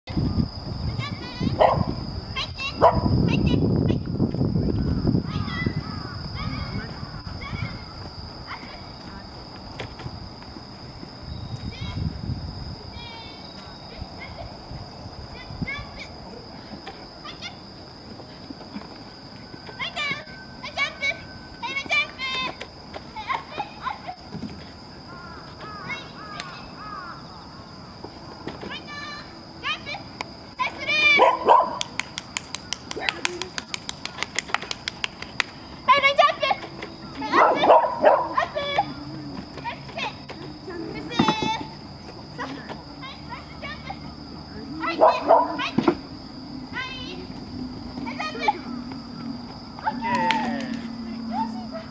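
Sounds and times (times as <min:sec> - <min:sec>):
small dog barking: 0:01.6 - 0:02.0, 0:02.8 - 0:03.1, 0:31.1 - 0:31.9, 0:37.2 - 0:38.5, 0:44.8 - 0:45.7
high-pitched whine: 0:40.4 - 0:51.9.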